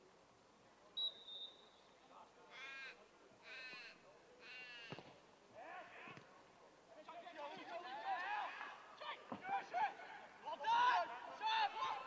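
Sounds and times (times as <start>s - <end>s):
referee's whistle blast: 1.0s - 1.9s.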